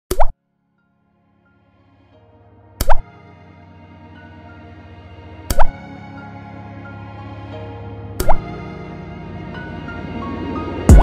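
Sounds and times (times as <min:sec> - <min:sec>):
water drop plop effect: 0:00.1 - 0:00.3, 0:08.2 - 0:08.4
soft music: 0:00.4 - 0:11.0.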